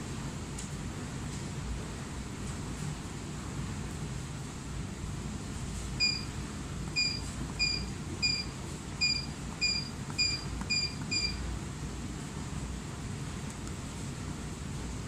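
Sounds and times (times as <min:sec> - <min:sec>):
steady low hum: 0:00.0 - 0:15.0
short high beeps: 0:06.0 - 0:06.3, 0:07.0 - 0:11.4.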